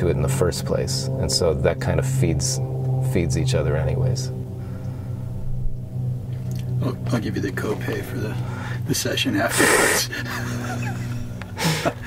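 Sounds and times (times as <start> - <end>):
low steady drone: 0.0 - 12.0
sharp intake of breath: 4.5 - 5.5, 8.4 - 8.9
men laughing softly: 9.5 - 12.0.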